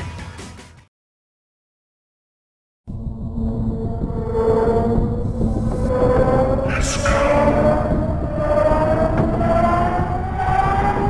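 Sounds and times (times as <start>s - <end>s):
low rumble: 2.9s - 11.0s
rising sustained tone: 2.9s - 11.0s.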